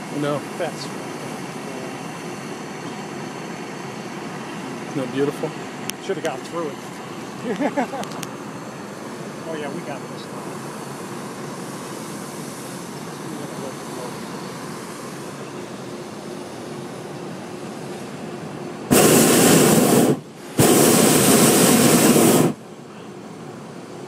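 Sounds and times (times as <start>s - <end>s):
propane burner blasts: 0.0s - 24.0s.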